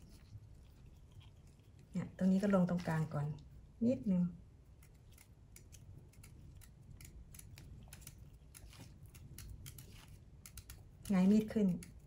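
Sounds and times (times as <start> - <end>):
knife cutting into radish: 7.0 - 11.9.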